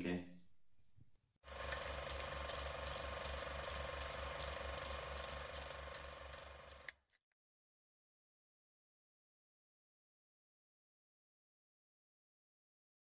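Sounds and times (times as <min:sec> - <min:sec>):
film projector clattering: 0:01.5 - 0:07.0.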